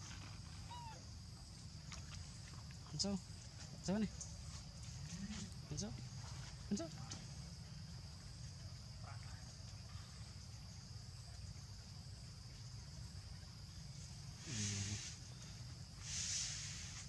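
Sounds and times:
high-pitched insect drone: 13.5 - 17.0
short vocal sound: 14.5 - 15.0.

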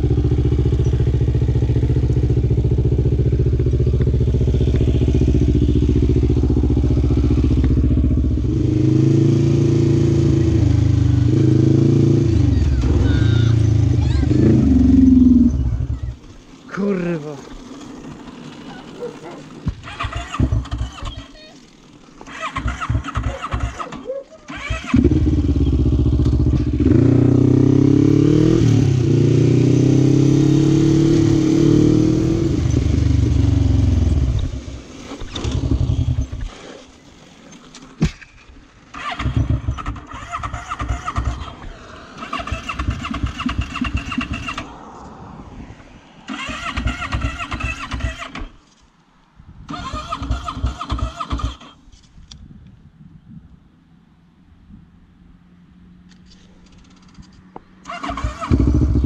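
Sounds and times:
quad engine running and revving: 0.0 - 16.2, 16.8 - 21.6, 22.2 - 36.9, 38.9 - 44.7, 46.3 - 48.5, 49.7 - 51.8, 57.8 - 59.0
quad engine cranking: 0.0 - 44.8, 46.3 - 48.6, 49.7 - 51.9, 56.2 - 59.0.

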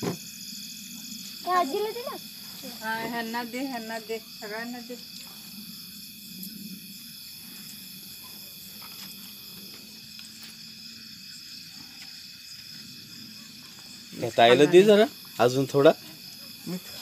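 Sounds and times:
crickets chirping: 0.0 - 17.0.

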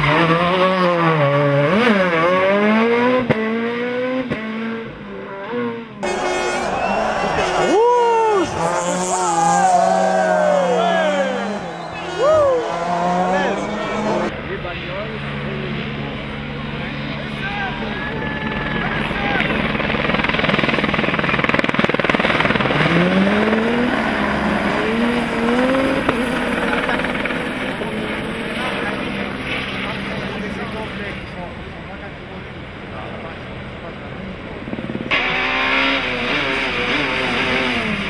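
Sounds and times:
rally car engine revving hard: 0.0 - 14.3, 22.2 - 26.6, 35.1 - 38.0
rally car passing on snow: 0.0 - 14.3, 22.1 - 31.0, 35.1 - 38.0.

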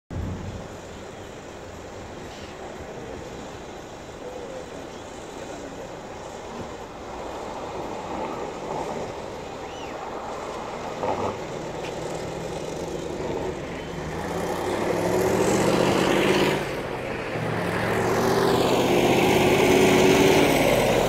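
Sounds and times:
minibus pulling in: 0.1 - 21.0
truck driving slowly past: 0.1 - 21.0.

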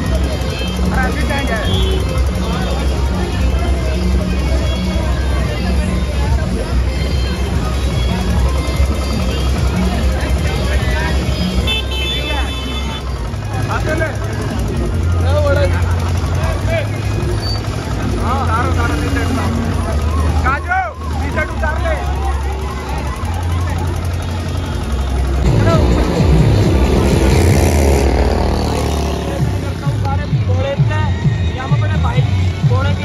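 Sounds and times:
loud music with heavy bass: 25.3 - 30.6.

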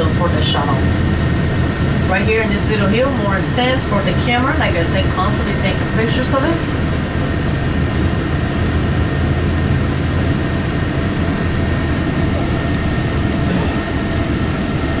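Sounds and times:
bus engine and road rumble: 0.0 - 15.0
faint steady whine: 0.0 - 15.0.

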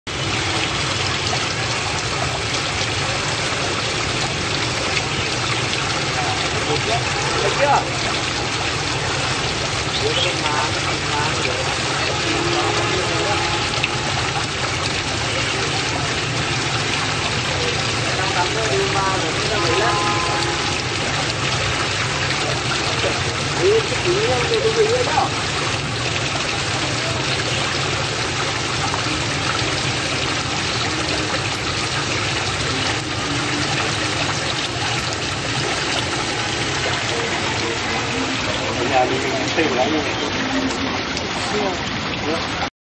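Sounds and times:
fountain water splashing: 0.1 - 42.7.

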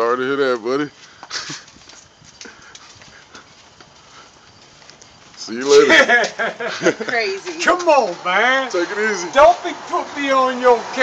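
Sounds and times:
footsteps on concrete: 0.4 - 11.0
person laughing: 1.3 - 1.8, 5.7 - 7.3.

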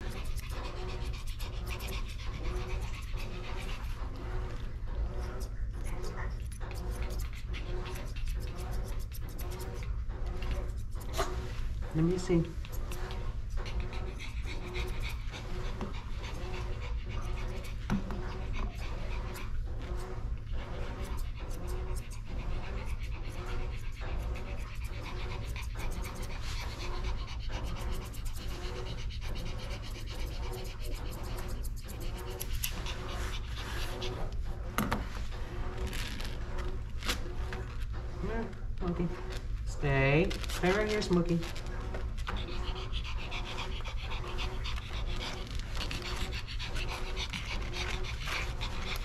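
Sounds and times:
dog panting: 0.0 - 49.0
steady low hum: 0.0 - 49.0
grooming shears snipping: 5.3 - 20.1.

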